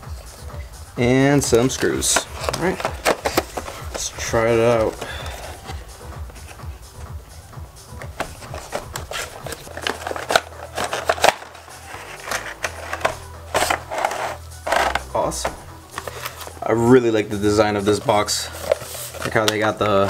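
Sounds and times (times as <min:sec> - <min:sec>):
background music with low bass: 0:00.0 - 0:20.0
plastic tray crinkling: 0:01.7 - 0:05.7, 0:08.2 - 0:15.1
cardboard scraping and crinkling: 0:01.7 - 0:05.8, 0:08.1 - 0:15.2, 0:17.9 - 0:20.0.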